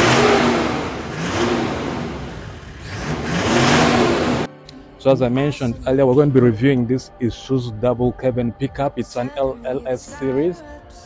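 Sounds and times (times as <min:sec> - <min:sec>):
car engine revving: 0:00.0 - 0:04.5.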